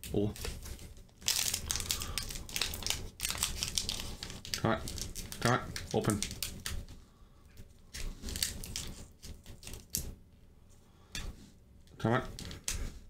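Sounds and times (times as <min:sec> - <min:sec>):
foil wrapper crinkling: 0:00.2 - 0:06.9, 0:07.9 - 0:10.1.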